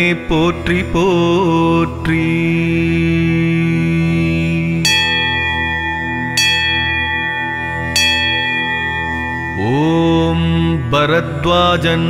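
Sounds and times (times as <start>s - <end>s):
steady musical drone: 0.0s - 12.0s
bell strikes ringing: 4.8s - 10.7s.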